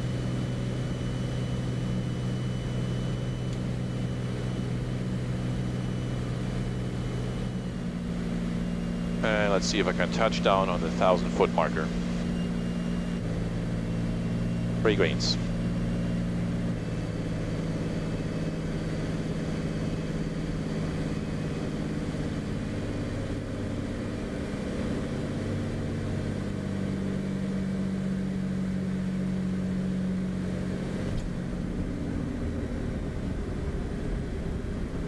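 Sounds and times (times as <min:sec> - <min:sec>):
piston engine and propeller hum: 0:00.0 - 0:35.0.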